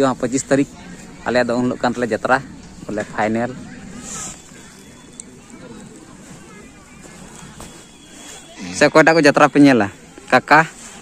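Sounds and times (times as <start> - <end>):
faint distant voices talking: 0.0 - 11.0.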